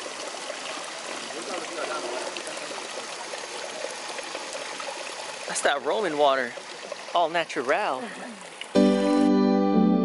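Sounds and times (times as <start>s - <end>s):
water running onto drain grate: 0.0s - 8.8s.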